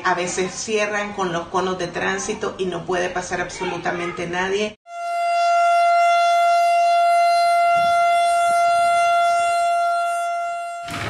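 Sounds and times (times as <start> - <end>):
steady siren-like tone: 4.9 - 11.0.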